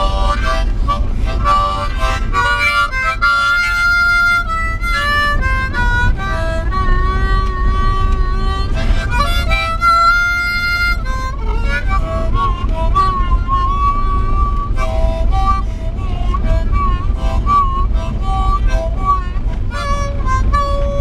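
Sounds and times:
car road noise rumble: 0.0s - 21.0s
harmonica melody: 0.0s - 21.0s.

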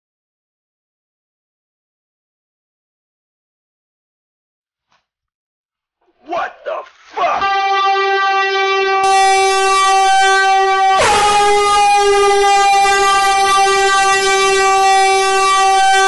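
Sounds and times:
loud steady drone: 7.4s - 16.0s.

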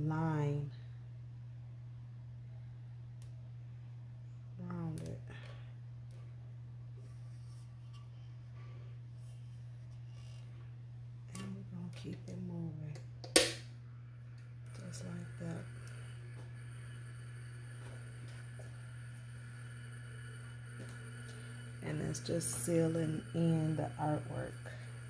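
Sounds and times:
tumbler spinner humming: 0.0s - 25.0s.

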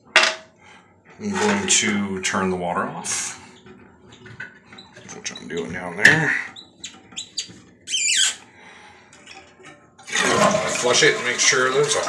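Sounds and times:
valve squeal falling in pitch: 6.6s - 8.4s.

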